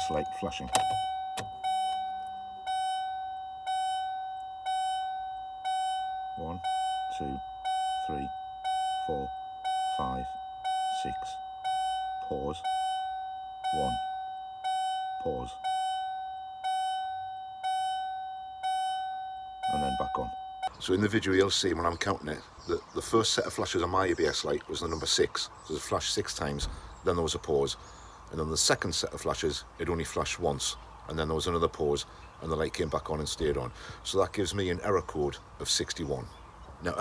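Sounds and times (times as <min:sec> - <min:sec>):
dashboard warning chime dinging: 0:00.0 - 0:22.1.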